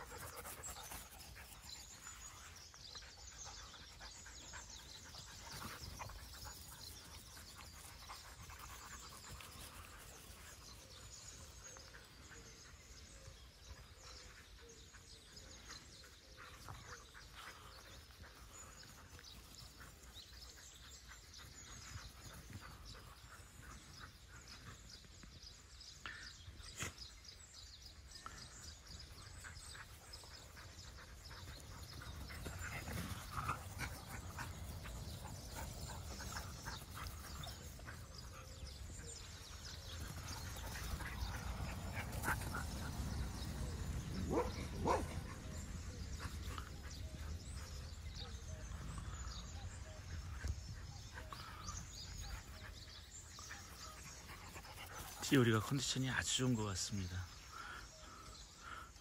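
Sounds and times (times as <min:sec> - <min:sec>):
dogs playing on grass: 0:00.0 - 0:59.0.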